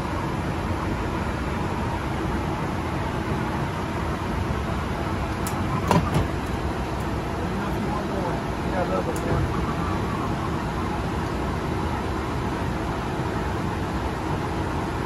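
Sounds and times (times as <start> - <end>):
airliner engines running: 0.0 - 15.0.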